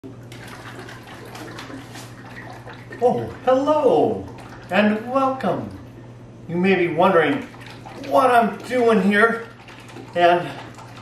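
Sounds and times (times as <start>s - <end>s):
liquid sloshing in shaken can: 0.0s - 5.9s, 7.0s - 11.0s.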